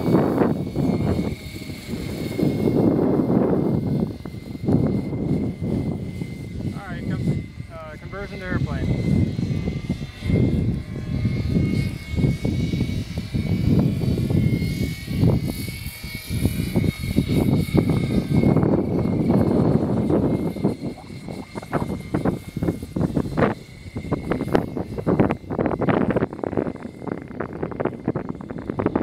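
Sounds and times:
model aircraft rotors whining: 0.0 - 29.0
wind rumbling on microphone: 0.0 - 29.0.

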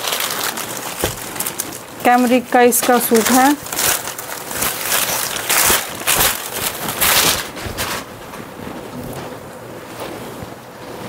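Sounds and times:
fabric rustling: 2.9 - 11.0.

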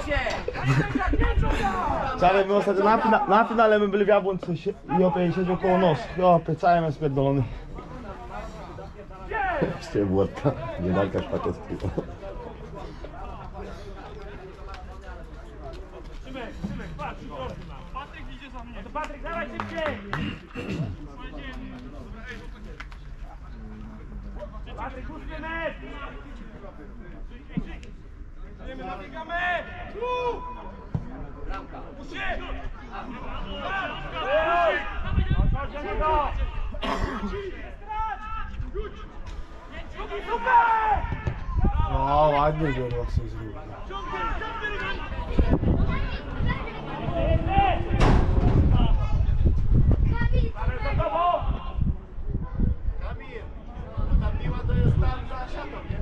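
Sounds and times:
faint voices: 6.9 - 56.0
men shouting at a distance: 32.0 - 36.6, 39.8 - 42.7, 43.7 - 48.0
wind rumbling on microphone: 45.0 - 56.0
brief low thumps: 47.8 - 50.1.

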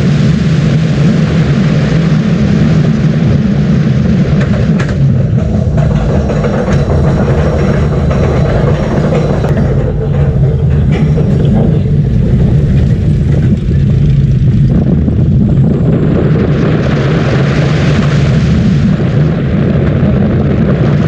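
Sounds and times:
roller coaster rumbling on track: 0.0 - 21.0
wind rushing on microphone: 0.0 - 21.0.

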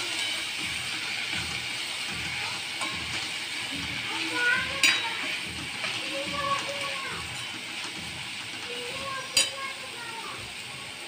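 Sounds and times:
spatula stirring: 0.0 - 9.8
greens sizzling in pan: 0.0 - 11.0
spatula clinking against pan: 2.8 - 3.3, 4.8 - 8.0, 9.3 - 9.8.

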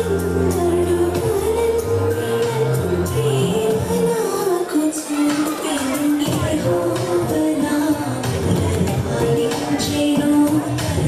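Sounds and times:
sustained instrumental accompaniment: 0.0 - 4.5
woman singing long notes: 0.0 - 11.0.

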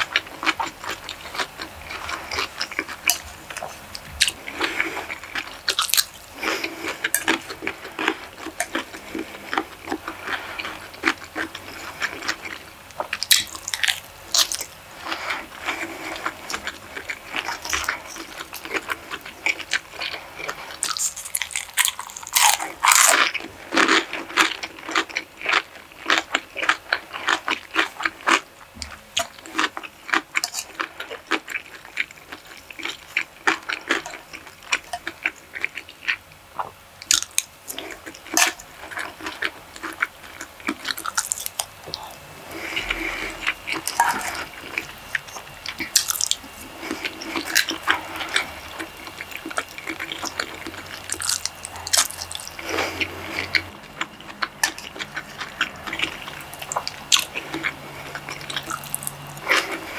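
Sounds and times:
close-up wet chewing: 0.0 - 59.9.

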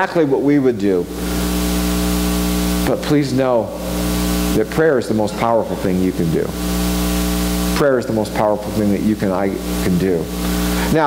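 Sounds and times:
speech: 0.0 - 1.1, 2.8 - 3.8, 4.6 - 6.6, 7.8 - 10.3
electrical mains hum: 0.0 - 11.0
static hiss: 0.6 - 11.0.

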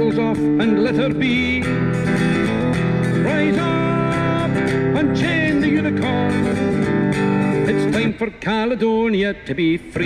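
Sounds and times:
strummed acoustic guitar: 0.0 - 9.0
man singing folk song: 0.0 - 10.0.

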